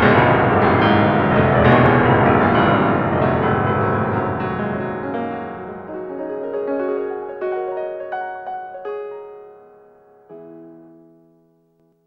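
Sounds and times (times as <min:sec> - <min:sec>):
improvised piano music: 0:00.0 - 0:12.0.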